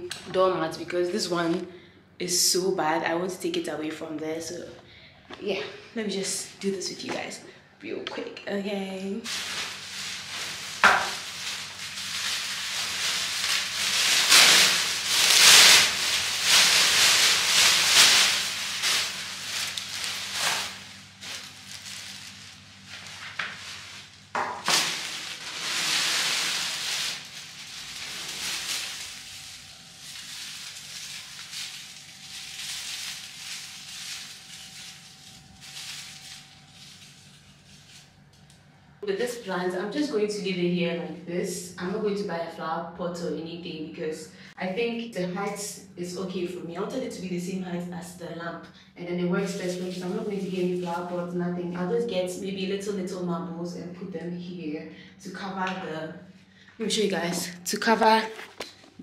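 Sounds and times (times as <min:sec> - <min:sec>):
plastic wrapping crinkling: 0:09.2 - 0:38.6, 0:49.4 - 0:51.3, 0:56.9 - 0:59.0.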